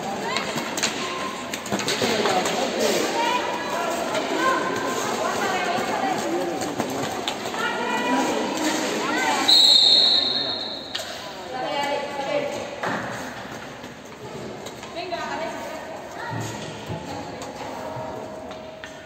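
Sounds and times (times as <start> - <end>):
referee's whistle blast: 9.5 - 10.9.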